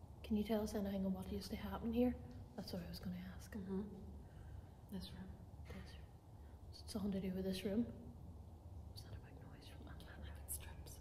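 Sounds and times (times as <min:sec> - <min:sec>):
low steady hum: 0:00.0 - 0:11.0
faint whispering: 0:02.6 - 0:07.1, 0:08.9 - 0:11.0.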